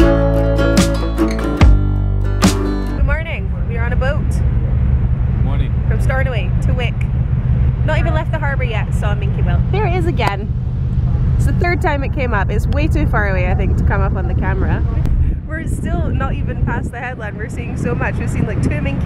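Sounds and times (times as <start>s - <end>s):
acoustic guitar music: 0.0s - 4.2s
ferry engine low rumble: 1.9s - 19.0s
woman talking: 3.0s - 4.4s, 5.9s - 7.1s, 7.8s - 10.5s, 11.4s - 19.0s.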